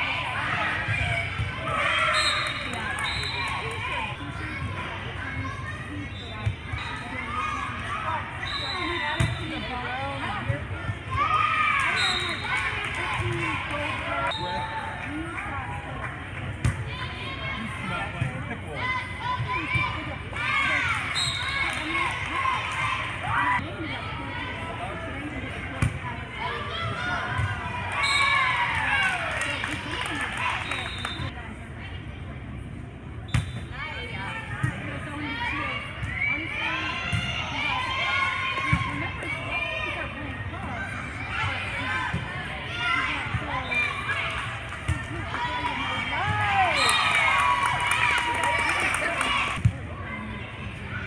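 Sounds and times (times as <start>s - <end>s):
voices in a gymnasium: 0.0s - 51.0s
girls shouting and cheering: 45.1s - 50.4s.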